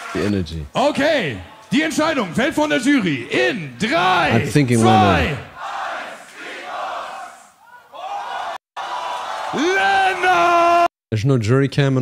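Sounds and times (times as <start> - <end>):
crowd shouting and cheering: 0.0 - 10.9.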